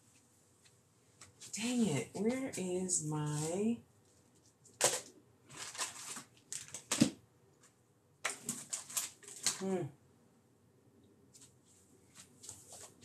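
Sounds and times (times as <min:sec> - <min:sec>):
small objects clicking and rustling: 0:04.1 - 0:09.7.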